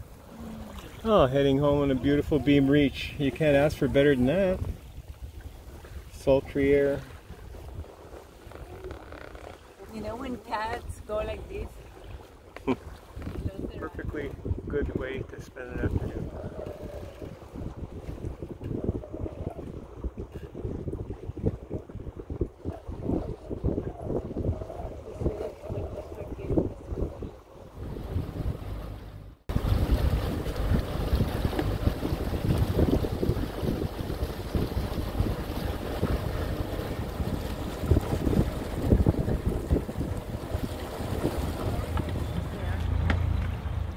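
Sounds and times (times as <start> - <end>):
wind buffeting microphone: 0.0 - 12.2, 12.8 - 43.9.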